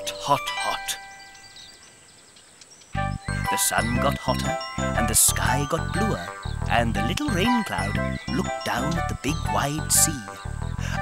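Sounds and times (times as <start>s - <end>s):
high chirps: 0.0s - 11.0s
held background music tones: 2.9s - 11.0s.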